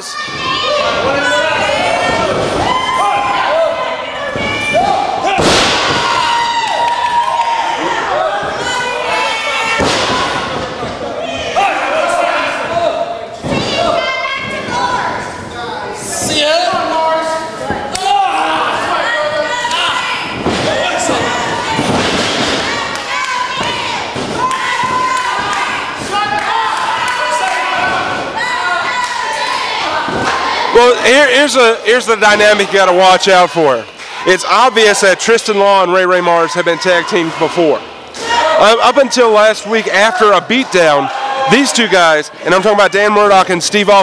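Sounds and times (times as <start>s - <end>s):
crowd noise in hall: 0.0s - 44.0s.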